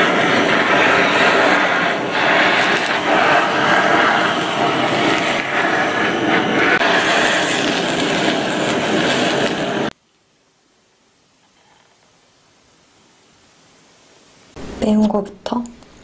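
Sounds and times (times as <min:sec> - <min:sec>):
blowtorch flame hissing: 0:00.0 - 0:09.9.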